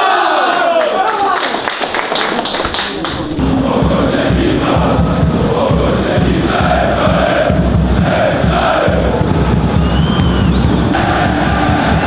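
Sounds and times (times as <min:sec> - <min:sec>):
men shouting together: 0:00.0 - 0:01.5
low pulsing: 0:03.2 - 0:12.0
stadium crowd chanting: 0:03.2 - 0:12.0.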